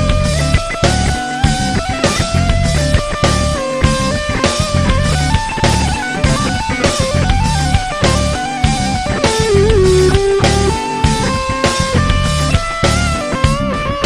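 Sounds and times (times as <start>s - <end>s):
backing track with drums: 0.0s - 14.0s
electric guitar funk rock lead: 0.0s - 14.0s.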